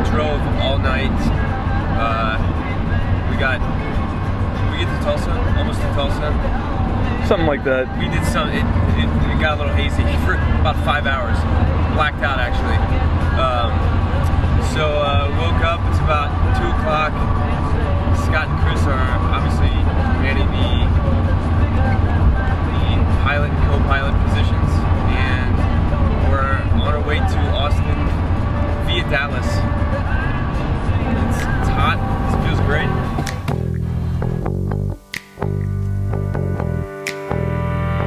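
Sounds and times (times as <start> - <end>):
indistinct voices: 0.0 - 34.5
low road rumble inside van: 0.0 - 34.9.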